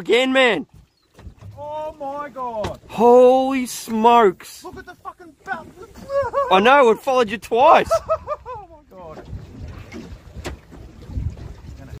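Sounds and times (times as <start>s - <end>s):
water noise: 0.0s - 12.0s
people laughing: 5.5s - 8.8s
wind rumble on microphone: 7.8s - 12.0s.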